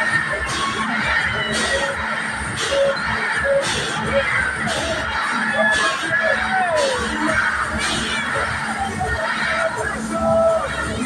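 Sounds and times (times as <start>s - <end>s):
fairground music with steady beat: 0.0s - 11.0s.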